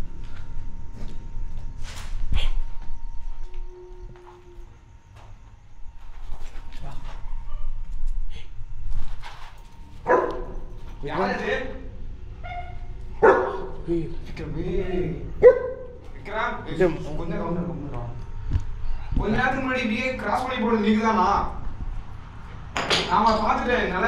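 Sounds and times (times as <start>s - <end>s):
dog barking and whining: 10.0s - 10.7s, 12.4s - 13.8s, 14.9s - 16.0s.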